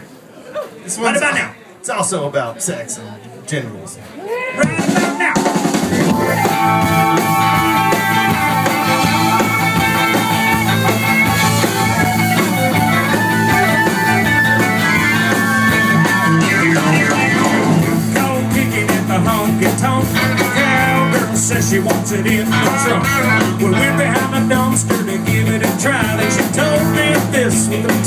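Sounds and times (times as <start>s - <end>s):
drum kit: 4.6s - 28.0s
stage piano: 4.6s - 28.0s
electric guitar: 5.6s - 28.0s.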